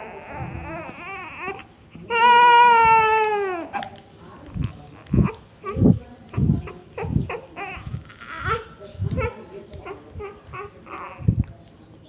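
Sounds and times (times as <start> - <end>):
newborn baby crying: 0.0 - 3.9, 4.5 - 11.5.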